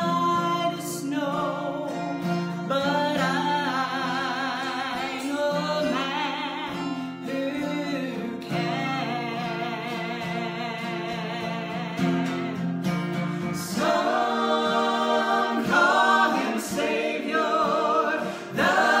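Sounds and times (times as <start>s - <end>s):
woman singing with vibrato: 0.0s - 2.0s, 2.7s - 12.7s, 13.3s - 19.0s
acoustic guitar: 0.0s - 19.0s
men singing in harmony: 13.3s - 19.0s.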